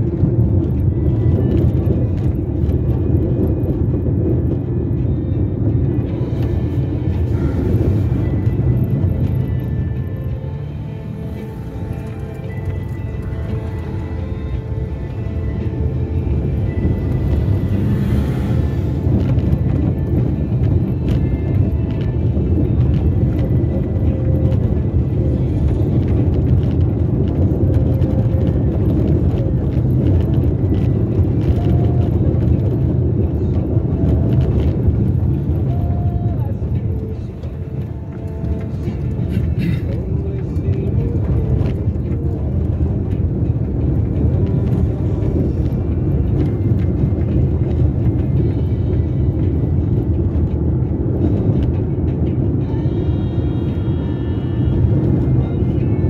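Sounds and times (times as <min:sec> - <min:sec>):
music: 0:00.0 - 0:56.0
tyre and engine rumble: 0:00.0 - 0:56.0.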